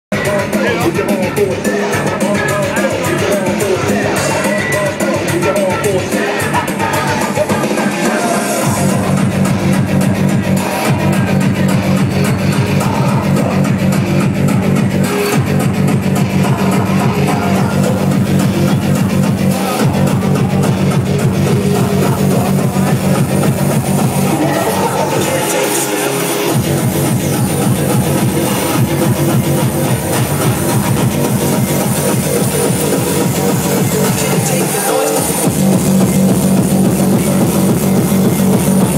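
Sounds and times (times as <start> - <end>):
hard dance music with fast kick: 0.1 - 38.9.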